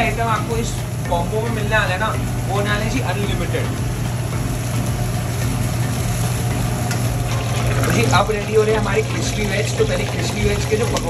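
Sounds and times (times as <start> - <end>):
gas burner roaring: 0.0 - 11.0
gravy sizzling in wok: 0.0 - 11.0
low hum: 0.0 - 11.0.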